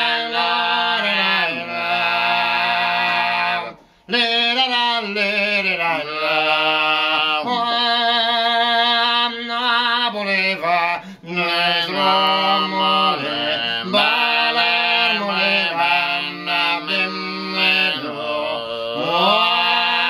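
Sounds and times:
men singing in harmony: 0.0s - 20.0s.

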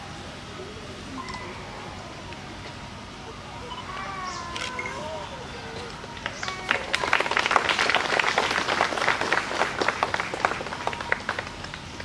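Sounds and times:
crowd applauding: 5.4s - 12.0s.

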